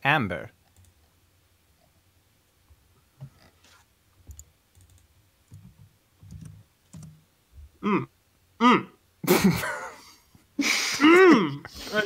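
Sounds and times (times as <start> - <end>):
computer keyboard clicking: 0.7 - 1.0, 4.3 - 7.2.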